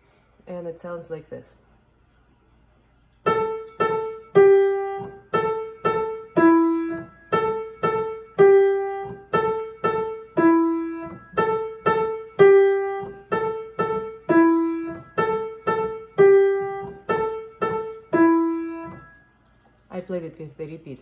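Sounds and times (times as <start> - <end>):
piano playing simple melody: 3.2 - 19.4.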